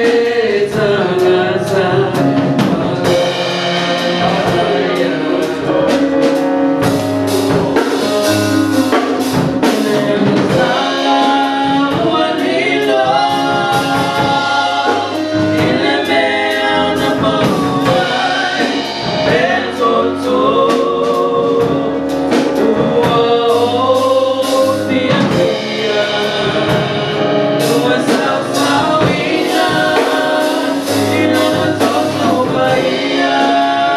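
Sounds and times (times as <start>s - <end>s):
drum kit steady beat: 0.0s - 33.9s
keyboard: 0.0s - 33.9s
singers singing gospel: 0.0s - 33.9s.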